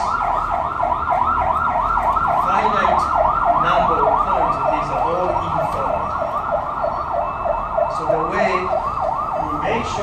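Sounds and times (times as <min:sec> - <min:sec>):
electronic siren yelping: 0:00.0 - 0:10.0.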